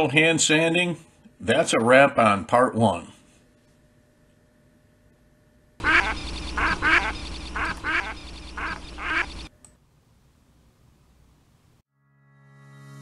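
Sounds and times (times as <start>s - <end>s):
duck quacking: 5.8s - 9.5s.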